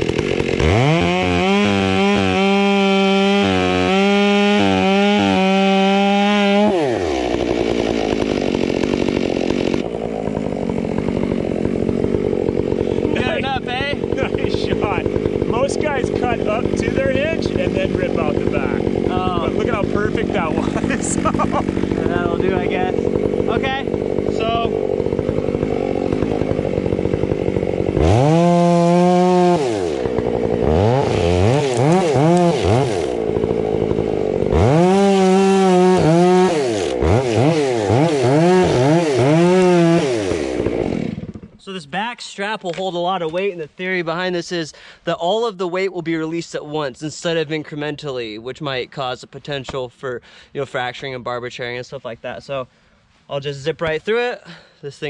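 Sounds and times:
chainsaw cutting into wood: 0.0 - 41.7.

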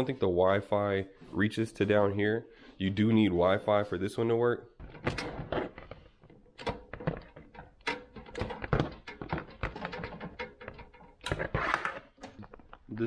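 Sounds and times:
cords rustling: 1.0 - 13.0
plastic plug clicks and knocks: 6.6 - 11.5.

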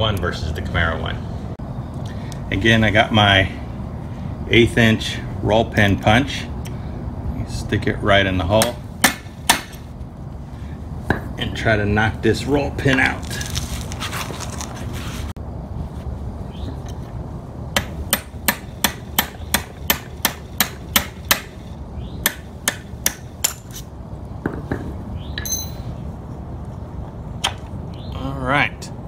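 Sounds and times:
hammer striking metal punch: 8.6 - 9.8, 17.8 - 21.6, 22.2 - 23.8, 24.5 - 25.9.

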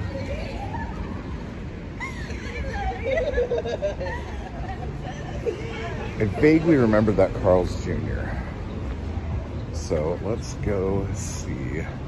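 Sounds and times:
city street traffic rumble: 0.0 - 12.0
man laughing: 2.0 - 6.6.

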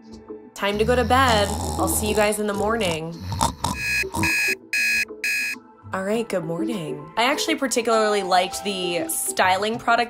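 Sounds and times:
alarm clock beeping: 3.7 - 5.6.

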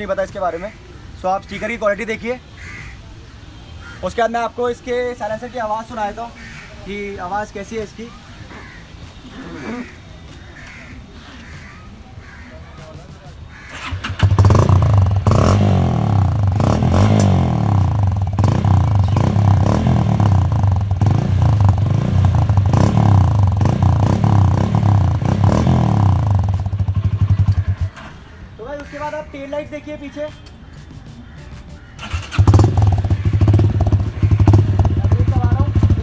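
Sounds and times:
motorcycle engine running: 13.7 - 28.1, 32.0 - 36.0.

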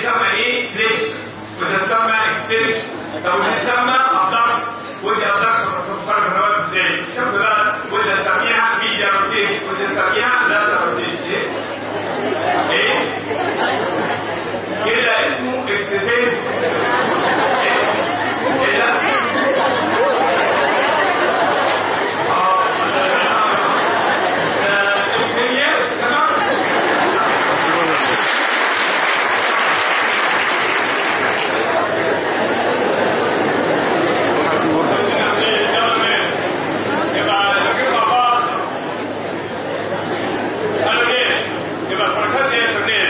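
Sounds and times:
man talking into microphone: 0.0 - 11.6, 14.8 - 16.6, 24.6 - 26.5, 34.9 - 36.4, 40.8 - 43.0
chatter of voices in a hall: 0.0 - 43.0.

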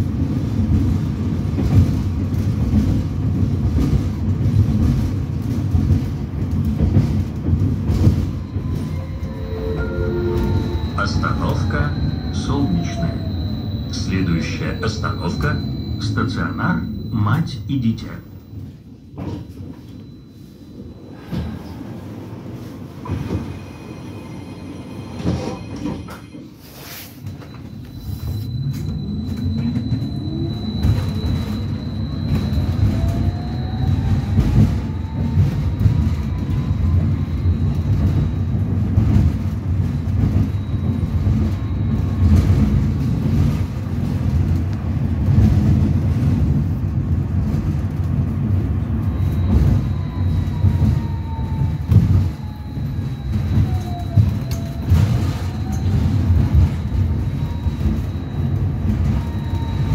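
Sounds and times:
tram wheels rumbling on rails: 0.0 - 59.9.

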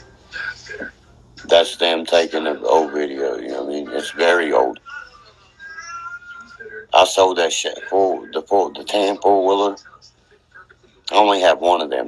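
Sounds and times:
man speaking: 0.4 - 4.8, 6.9 - 9.8, 11.1 - 12.0.

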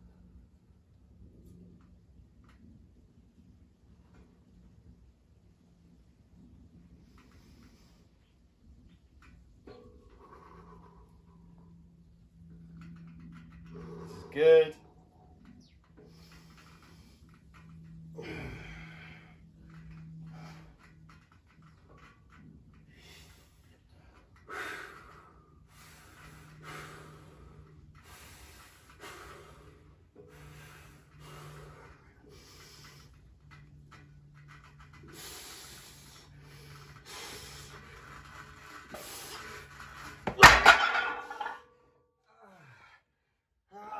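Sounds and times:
hard strained breathing: 13.5 - 14.4, 16.0 - 21.3, 22.8 - 40.3
metal weights clattering on concrete: 40.2 - 41.6.

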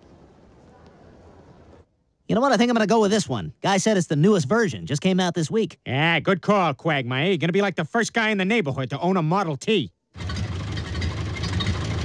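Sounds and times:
old car engine chugging: 10.2 - 12.0.

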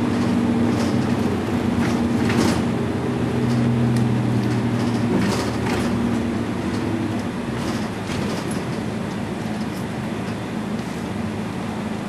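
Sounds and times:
bus engine drone: 0.0 - 12.0
road and body noise: 0.0 - 12.0.

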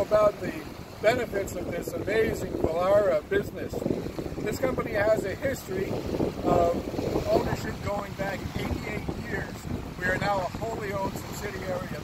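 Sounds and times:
man speaking: 0.0 - 3.8, 4.4 - 12.0
wind buffeting microphone: 0.0 - 12.0.

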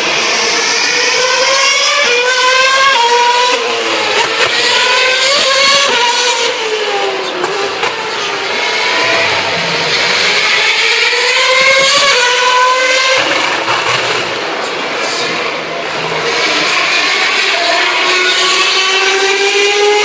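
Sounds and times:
racing car engines at high revs: 0.0 - 20.0.

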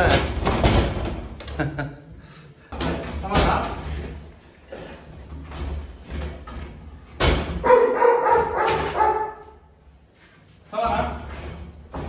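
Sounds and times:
dog barking: 7.6 - 9.6.

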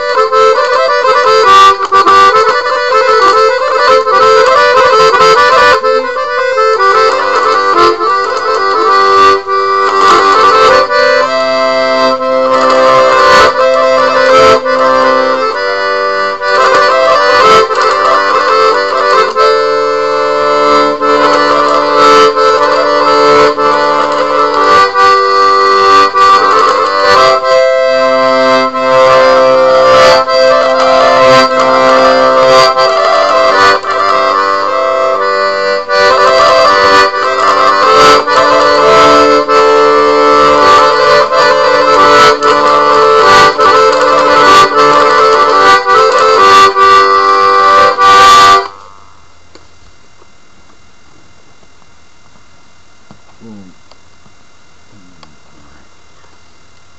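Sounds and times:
accordion playing: 0.0 - 49.0.

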